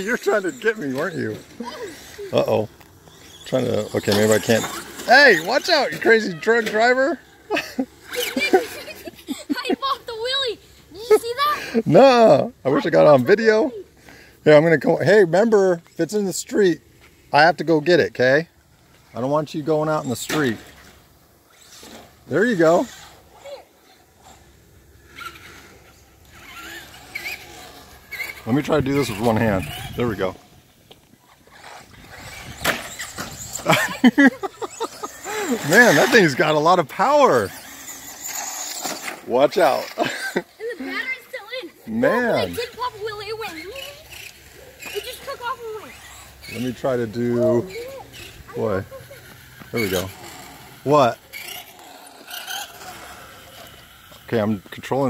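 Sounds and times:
toy truck electric motor whine: 0:00.0 - 0:07.1, 0:19.9 - 0:30.2, 0:31.2 - 0:54.3.

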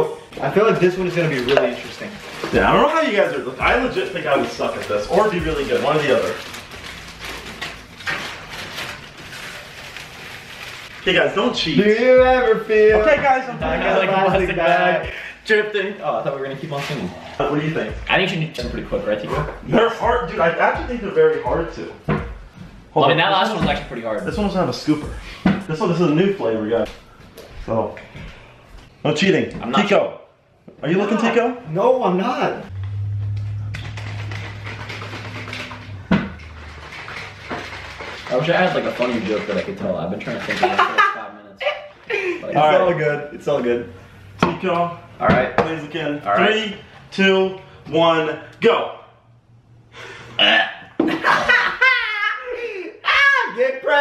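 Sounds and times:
plastic bag crinkling: 0:01.1 - 0:11.0, 0:34.1 - 0:39.8
steady low hum: 0:32.7 - 0:38.3.

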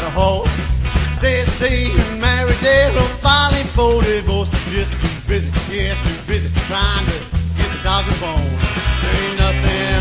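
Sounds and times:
country rock song with band: 0:00.0 - 0:10.0.

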